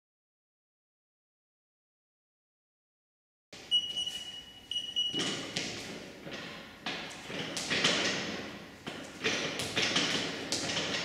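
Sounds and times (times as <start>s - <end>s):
long electronic timer beeps: 3.7s - 5.2s.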